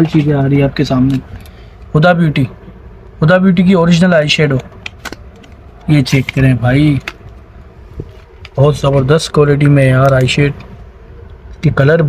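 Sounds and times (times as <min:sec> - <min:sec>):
person speaking: 0:00.0 - 0:02.6, 0:03.2 - 0:07.3, 0:08.5 - 0:10.7.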